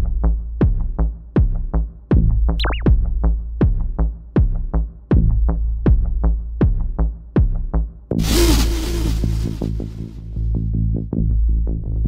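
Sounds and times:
electronic dance music: 0:02.6 - 0:02.9
burst of hiss-like noise: 0:08.2 - 0:10.3.

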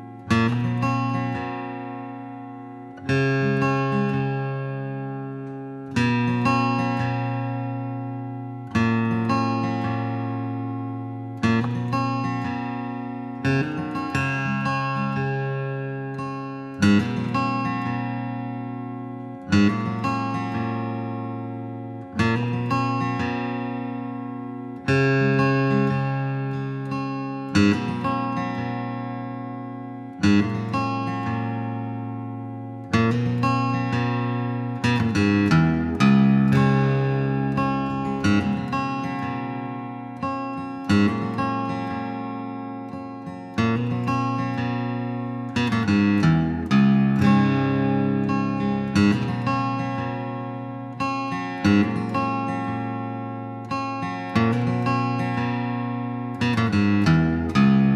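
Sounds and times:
acoustic guitar strumming slow chords: 0:00.0 - 0:57.9.

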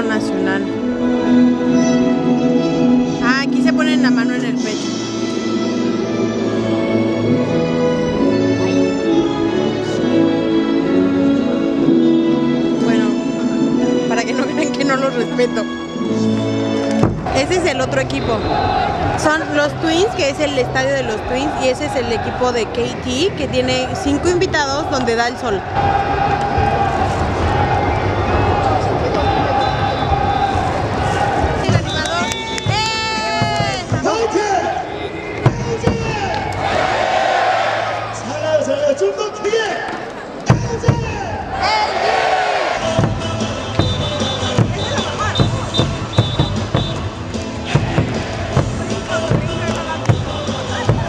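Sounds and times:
music over loudspeakers: 0:00.0 - 0:25.5, 0:28.2 - 0:36.3, 0:42.8 - 0:51.0
amplified voice: 0:12.8 - 0:16.3, 0:17.2 - 0:18.5, 0:31.6 - 0:36.3
drum beats: 0:16.9 - 0:24.4, 0:27.4 - 0:34.5, 0:35.4 - 0:36.9, 0:40.5 - 0:41.3, 0:42.8 - 0:51.0.

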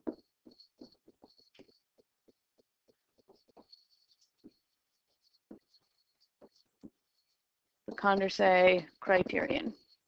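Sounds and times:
stylus tapping on screen: 0:05.3 - 0:07.2.

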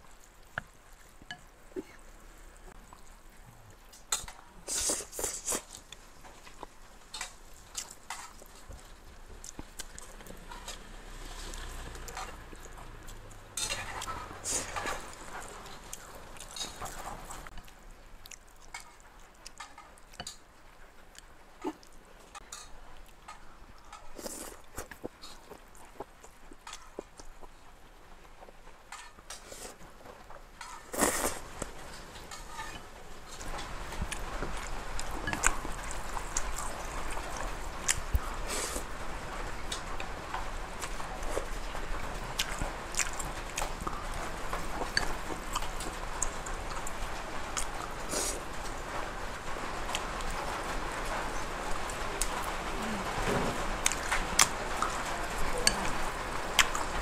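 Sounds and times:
wet chewing and slurping: 0:04.0 - 0:08.8, 0:09.4 - 0:20.4, 0:23.3 - 0:27.6, 0:30.6 - 0:38.9, 0:53.3 - 0:57.0.

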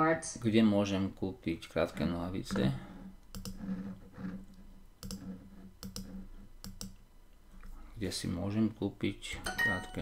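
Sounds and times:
faint steady hum: 0:00.0 - 0:10.0
computer mouse clicks: 0:02.5 - 0:03.9, 0:04.5 - 0:07.0.

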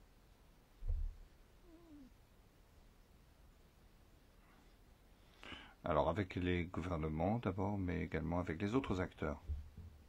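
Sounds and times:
low thump: 0:00.8 - 0:01.2.

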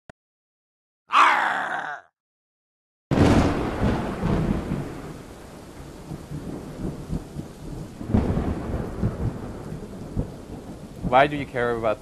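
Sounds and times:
loud voice-like groan: 0:01.1 - 0:02.1.

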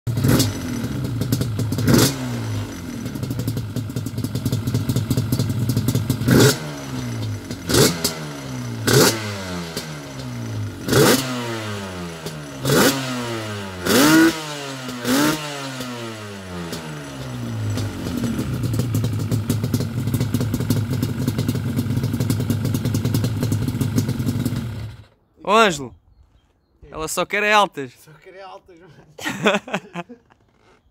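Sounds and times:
two-stroke engine idling and revving: 0:00.1 - 0:25.1.

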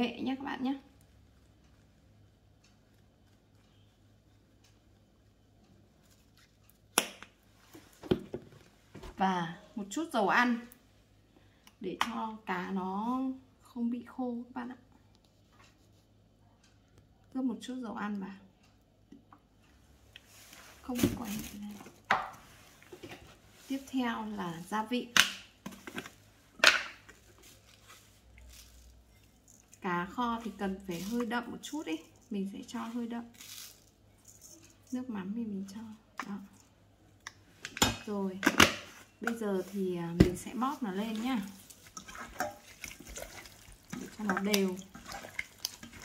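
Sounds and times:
person speaking: 0:29.8 - 0:33.3, 0:39.2 - 0:41.8, 0:43.9 - 0:45.0.

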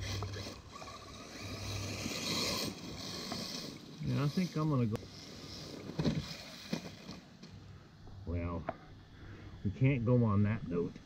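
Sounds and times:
man speaking: 0:04.0 - 0:05.0, 0:08.2 - 0:08.7, 0:09.6 - 0:11.0.

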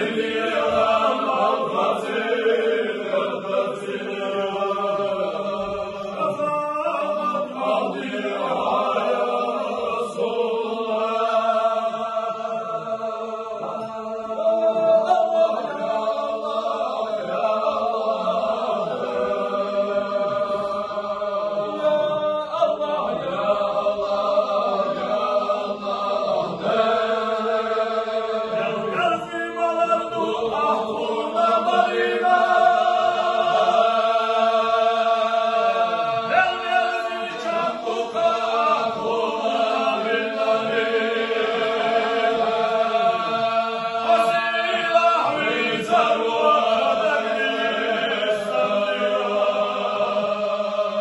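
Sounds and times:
male voices chanting: 0:00.0 - 0:51.0.

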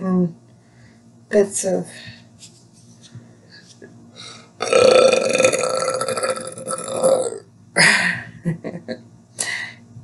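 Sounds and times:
woman talking: 0:00.0 - 0:00.4, 0:01.3 - 0:02.3
woman burping: 0:04.6 - 0:08.0.

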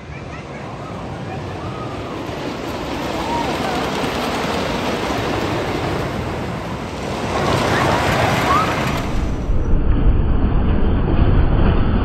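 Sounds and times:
roller coaster rumbling on wooden track: 0:00.0 - 0:12.0.

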